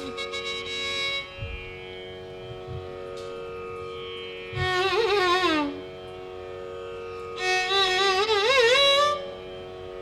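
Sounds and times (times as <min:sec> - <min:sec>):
steady drone: 0:00.0 - 0:10.0.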